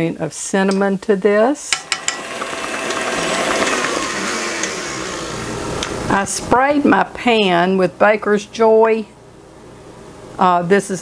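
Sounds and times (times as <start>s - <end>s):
stand mixer motor running: 1.8s - 6.1s.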